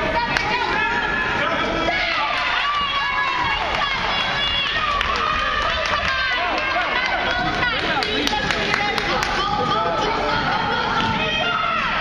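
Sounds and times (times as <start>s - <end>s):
people shouting: 0.0s - 12.0s.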